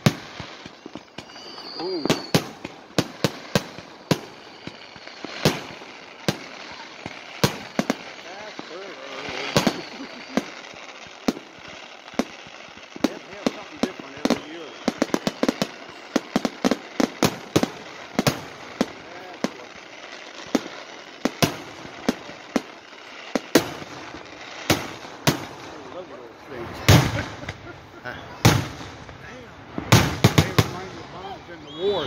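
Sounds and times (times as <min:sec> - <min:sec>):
fireworks bangs and pops: 0:00.0 - 0:32.0.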